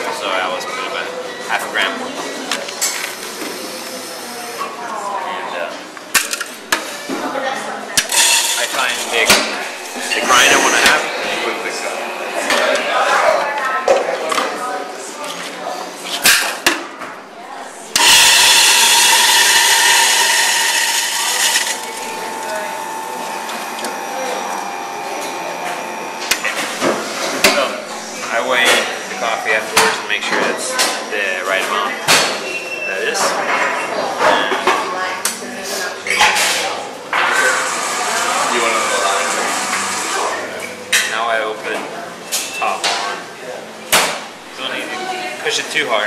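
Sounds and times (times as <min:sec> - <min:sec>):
coffee grinder grinding: 0:08.1 - 0:09.2, 0:18.0 - 0:26.8
grinder motor humming: 0:08.1 - 0:13.3, 0:18.0 - 0:27.5, 0:37.6 - 0:40.5.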